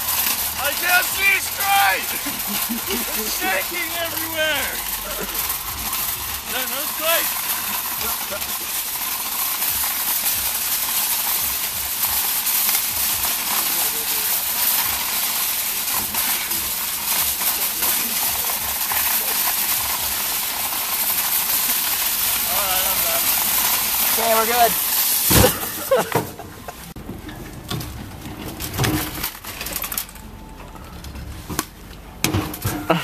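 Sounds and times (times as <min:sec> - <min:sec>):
shopping cart rattling on gravel: 0:00.0 - 0:33.0.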